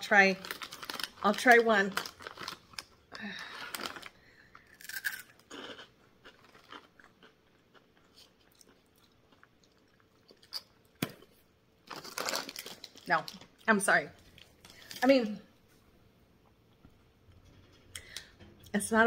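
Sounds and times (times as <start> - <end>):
crunching prawn crackers: 0.4 - 11.1, 11.8 - 13.6.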